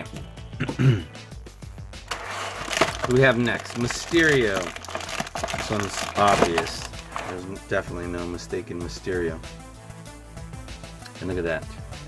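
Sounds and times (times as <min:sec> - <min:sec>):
quiet background music: 0:00.0 - 0:12.0
plastic tray crinkling: 0:02.1 - 0:07.4.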